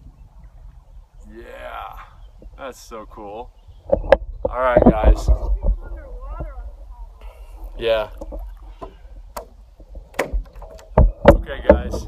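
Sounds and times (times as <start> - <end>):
wind rumble on microphone: 0.0 - 12.0
paddle in water: 2.0 - 12.0
paddle knocks: 8.1 - 12.0.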